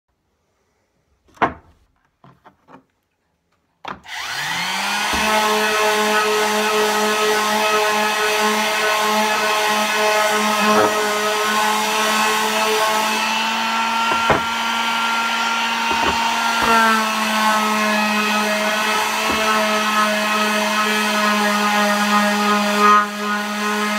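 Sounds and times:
electric sander motor: 4.1 - 23.9
sander knocking on wood: 4.6 - 23.9.

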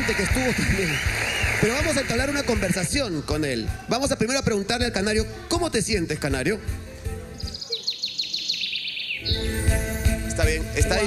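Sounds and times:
canary singing: 7.3 - 9.9.

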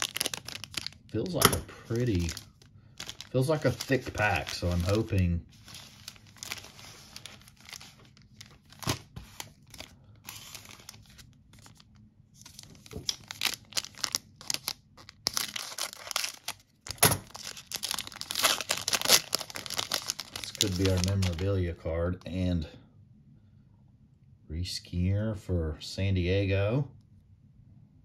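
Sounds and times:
foil wrapper crinkling: 0.0 - 21.6
foil wrapper ripping: 0.0 - 21.6.

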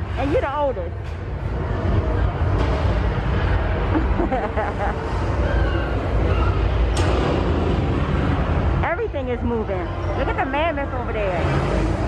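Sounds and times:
steady low rumble: 0.0 - 12.0
people's voices: 8.8 - 11.8.

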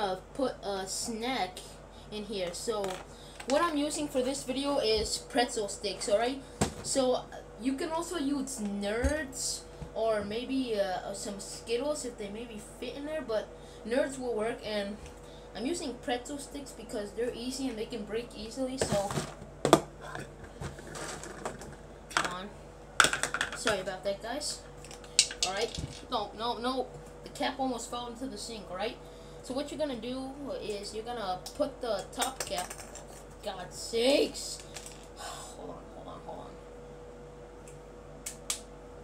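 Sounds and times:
faint steady hum: 0.0 - 39.0
plastic parts clicking and knocking: 23.0 - 23.8.

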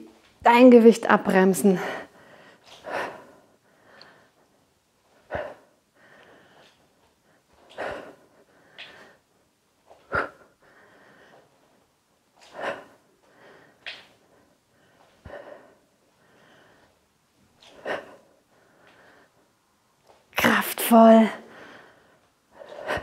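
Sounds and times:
woman breathing: 1.6 - 20.3, 21.3 - 23.0.

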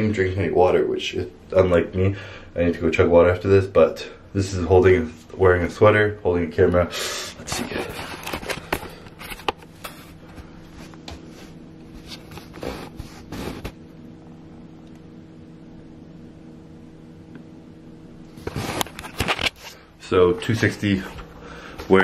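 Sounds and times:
steady low hum: 0.0 - 22.0
camera handling and clothing rustle: 7.5 - 11.3, 18.4 - 19.8.

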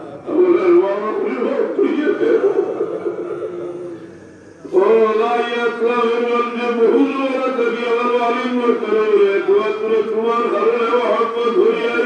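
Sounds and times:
man chanting a sermon: 0.0 - 12.0.

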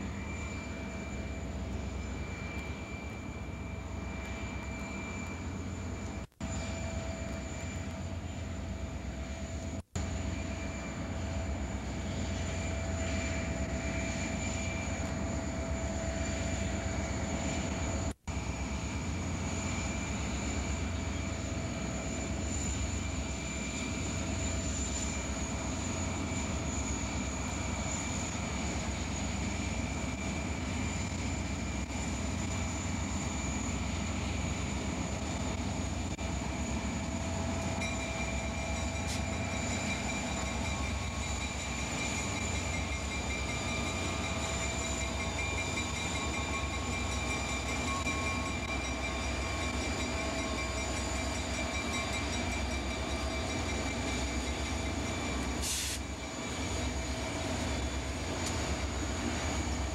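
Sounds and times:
diesel locomotive engine rumble: 0.0 - 59.9.

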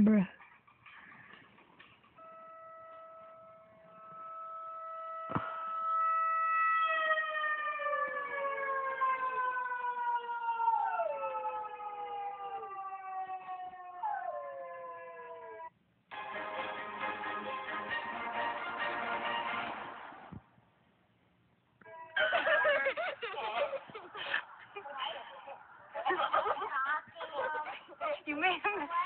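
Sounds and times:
siren through phone speaker: 2.2 - 15.7
dog howling: 13.6 - 15.7.

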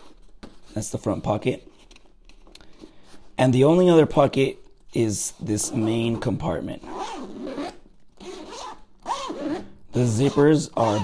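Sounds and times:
zipper being pulled: 5.7 - 11.0.

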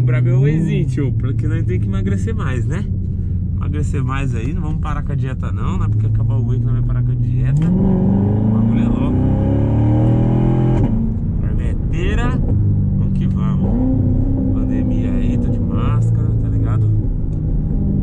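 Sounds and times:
car engine from inside cabin: 0.0 - 18.0.

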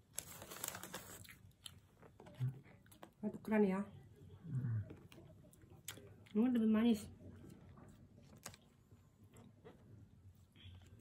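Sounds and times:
plastic cup crinkling: 0.0 - 2.4.

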